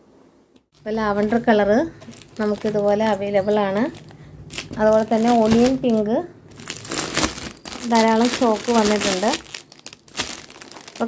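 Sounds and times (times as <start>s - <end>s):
plastic film crinkling: 0.8s - 11.0s.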